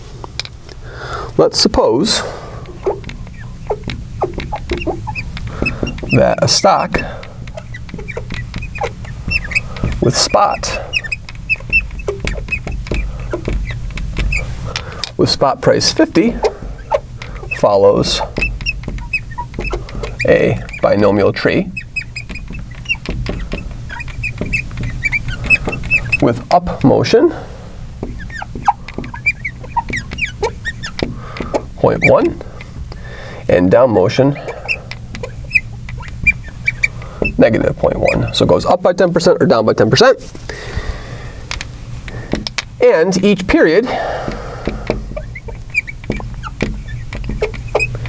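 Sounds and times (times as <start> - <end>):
steady low hum: 0.0 - 48.0
marker squeaking on glass: 1.5 - 40.7, 41.5 - 48.0.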